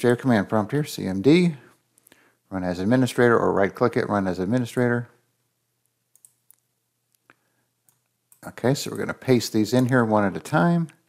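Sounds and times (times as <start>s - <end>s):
faint computer mouse clicks: 6.1s - 9.1s.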